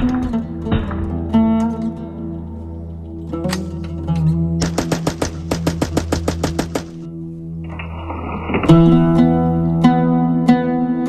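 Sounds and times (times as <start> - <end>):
guitar background music: 0.0 - 11.0
rapid gunfire cracks: 4.6 - 7.1.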